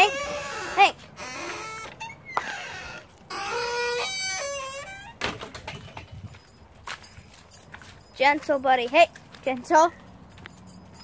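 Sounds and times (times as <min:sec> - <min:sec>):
dog whining: 0:00.0 - 0:04.9.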